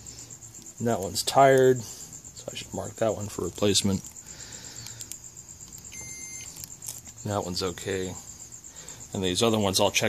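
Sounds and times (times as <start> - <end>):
short electronic beep: 6.0 - 6.5.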